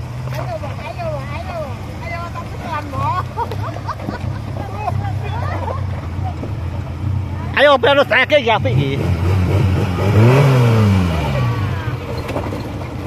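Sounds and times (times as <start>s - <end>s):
off-road engine running: 0.0s - 13.0s
people calling and chattering: 0.0s - 13.0s.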